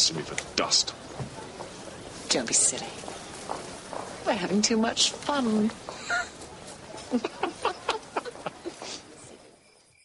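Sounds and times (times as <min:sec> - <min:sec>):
man laughing: 0:07.1 - 0:08.8.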